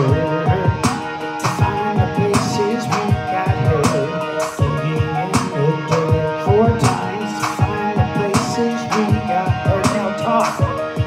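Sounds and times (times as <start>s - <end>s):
bass line: 0.0s - 11.0s
drums striking a steady beat: 0.0s - 11.0s.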